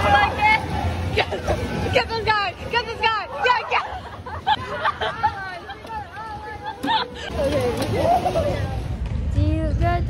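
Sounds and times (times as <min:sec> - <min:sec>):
low steady rumble: 0:00.0 - 0:10.0
people chattering: 0:00.0 - 0:10.0.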